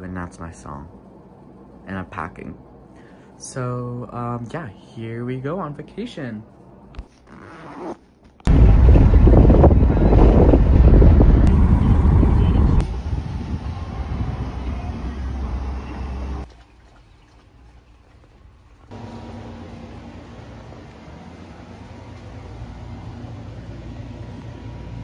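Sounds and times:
low rushing noise inside car: 0:08.5 - 0:16.5.

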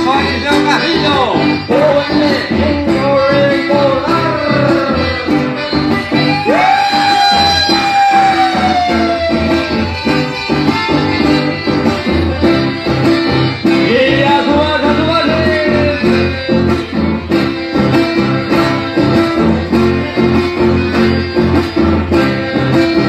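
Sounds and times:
accordion and guitar dance music: 0:00.0 - 0:23.0.

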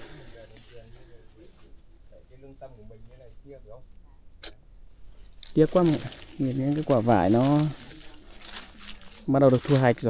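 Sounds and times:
people talking quietly: 0:00.0 - 0:10.0.

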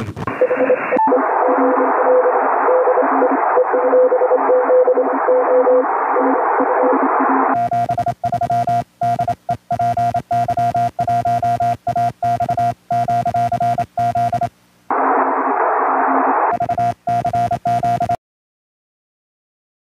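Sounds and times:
receiver hiss: 0:00.0 - 0:18.1
morse code tone: 0:00.4 - 0:06.3, 0:07.6 - 0:14.5, 0:16.5 - 0:18.2.

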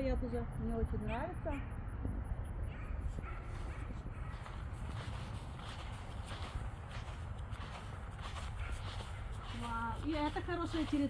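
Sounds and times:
dogs barking faintly: 0:01.5 - 0:11.0.

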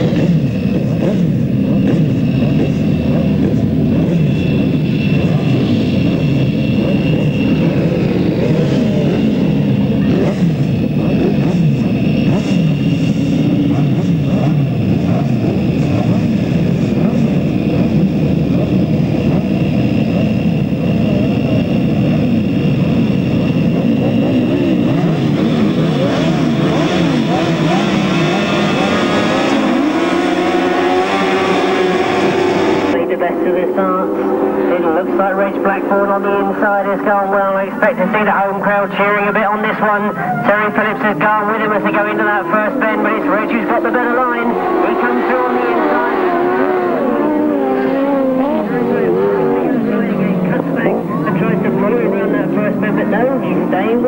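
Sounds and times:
racing engines revving: 0:00.0 - 0:54.0.

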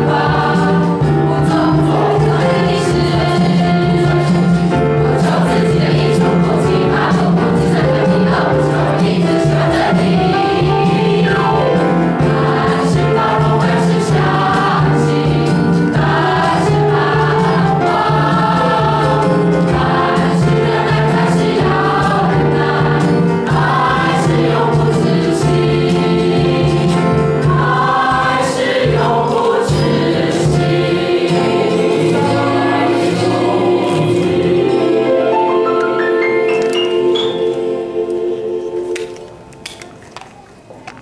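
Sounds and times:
mixed choir singing a hymn: 0:00.0 - 0:39.5.

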